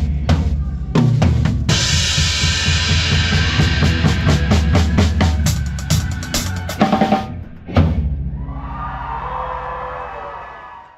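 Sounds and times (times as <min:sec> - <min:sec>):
drum kit fill: 0:00.0 - 0:08.4.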